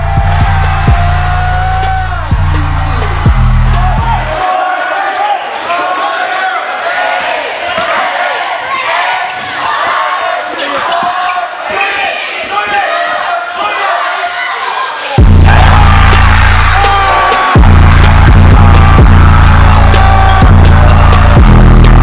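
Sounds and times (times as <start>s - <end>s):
music: 0.0s - 4.4s, 15.1s - 22.0s
overlapping voices of crowd: 0.0s - 22.0s.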